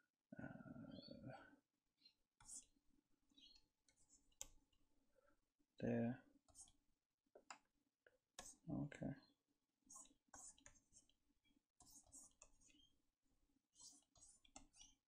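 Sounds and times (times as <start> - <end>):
stylus tapping drawing tablet: 8.4 - 8.6, 9.9 - 11.2, 11.8 - 12.9, 13.8 - 15.0.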